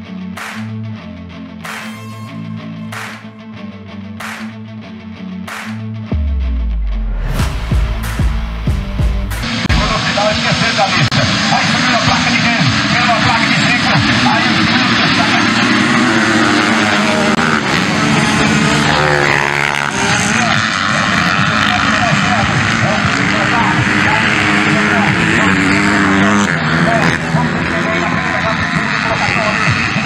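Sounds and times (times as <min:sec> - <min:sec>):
dirt bikes revving and racing: 0:09.4 - 0:30.0
motorbike passing close by: 0:11.5 - 0:30.0.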